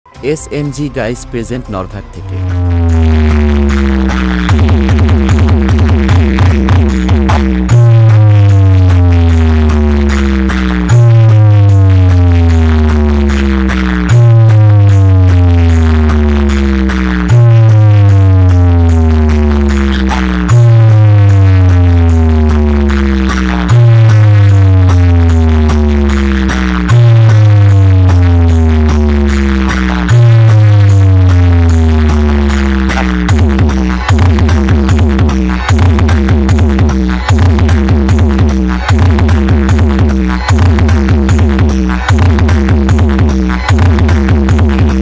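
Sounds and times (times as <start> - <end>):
fast ticking beat: 0.2 - 45.0
loud electronic bass music: 0.2 - 45.0.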